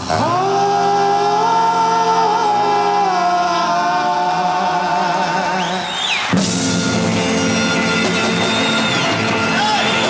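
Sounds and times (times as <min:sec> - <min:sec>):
male vocal group singing in harmony: 0:00.0 - 0:06.1.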